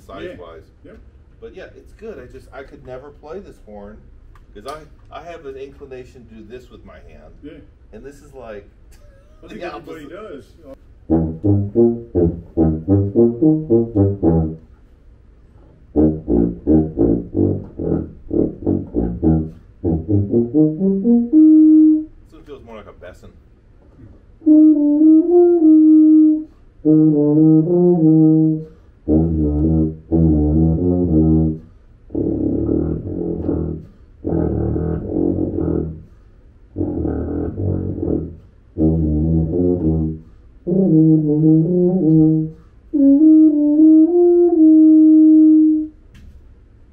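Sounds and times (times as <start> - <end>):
tuba playing: 10.9 - 14.9, 15.5 - 22.4, 24.4 - 46.0.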